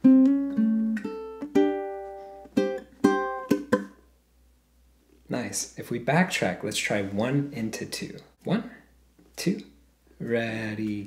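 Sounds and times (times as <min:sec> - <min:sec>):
ukulele fingerpicked riff: 0:00.0 - 0:04.0.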